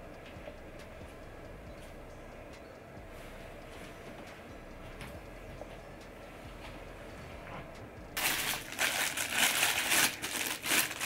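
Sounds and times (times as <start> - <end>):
plastic bag crinkling: 8.2 - 11.0.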